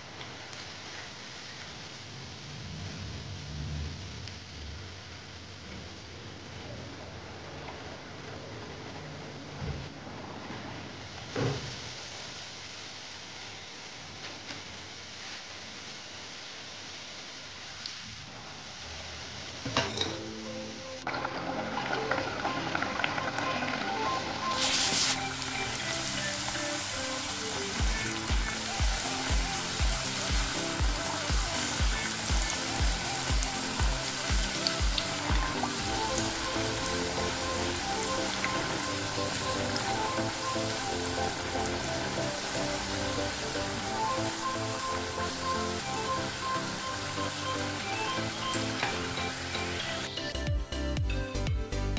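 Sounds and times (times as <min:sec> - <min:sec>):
background music: 0:20.0 - 0:51.9
dough deep-frying in oil: 0:21.0 - 0:50.1
low beat: 0:27.8 - 0:38.8, 0:50.4 - 0:51.9.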